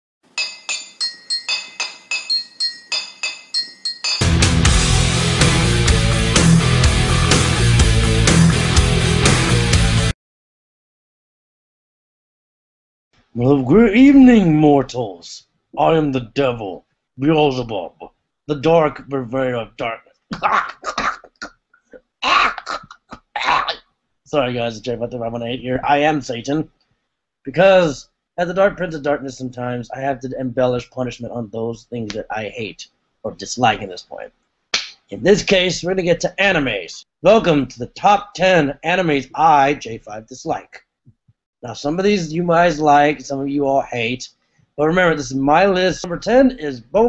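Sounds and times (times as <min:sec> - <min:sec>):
bright high chime clinks: 0:00.4 - 0:04.5.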